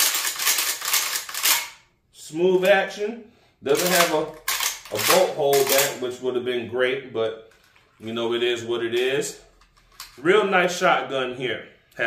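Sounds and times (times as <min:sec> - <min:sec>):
shotgun action clacking: 0:03.8 - 0:05.9.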